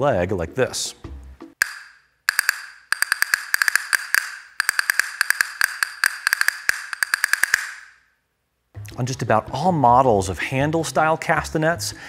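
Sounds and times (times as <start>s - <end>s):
castanets clicking: 1.6s - 8.0s.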